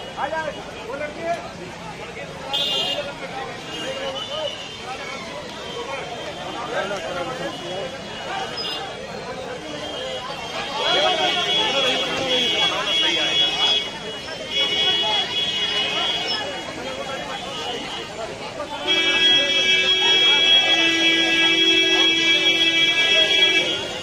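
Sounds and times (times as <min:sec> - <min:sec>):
crowd chatter: 0:00.0 - 0:24.0
vehicle horn honking: 0:02.5 - 0:03.1, 0:18.8 - 0:24.0.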